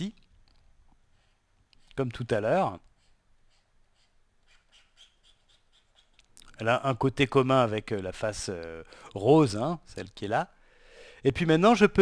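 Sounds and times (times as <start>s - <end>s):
stylus scratching on drawing tablet: 1.8s - 6.2s.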